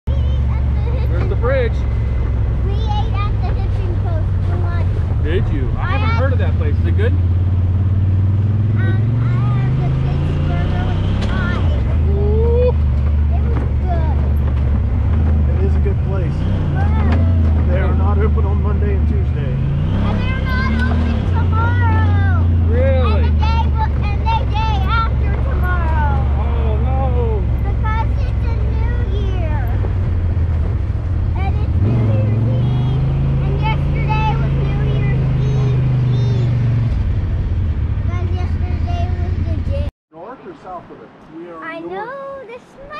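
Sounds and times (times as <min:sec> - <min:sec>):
engine revving while driving: 0:00.0 - 0:39.9.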